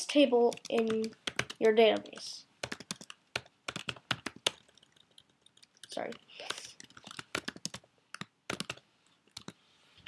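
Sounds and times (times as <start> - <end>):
typing on computer keyboard: 0.5 - 9.6.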